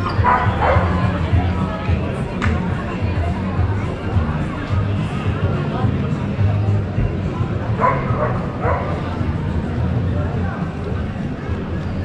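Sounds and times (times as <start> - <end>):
chatter of people: 0.0 - 12.0
dog barking: 0.2 - 1.0, 7.8 - 9.0.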